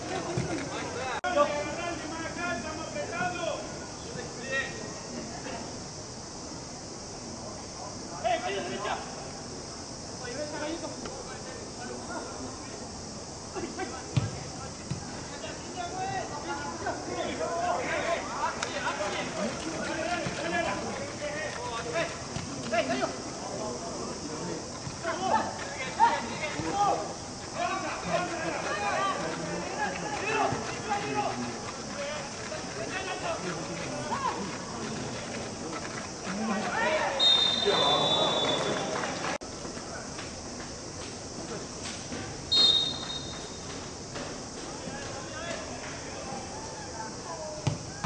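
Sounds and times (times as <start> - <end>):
football kicked: 14.1 - 15.1, 47.6 - 48.0
referee's whistle blast: 37.2 - 38.9, 42.5 - 43.5.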